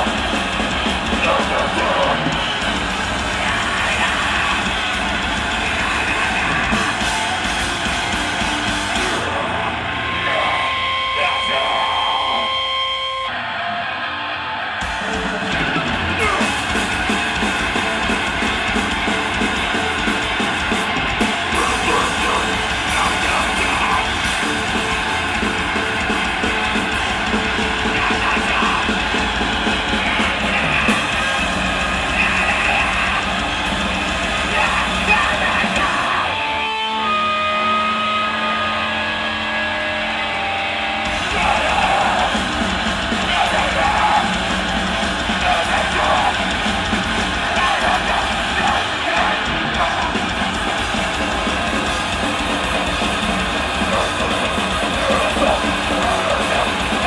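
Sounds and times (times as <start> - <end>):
drum kit: 0.0 - 11.5, 14.8 - 40.4, 41.0 - 57.0
distorted electric guitar: 0.0 - 57.0.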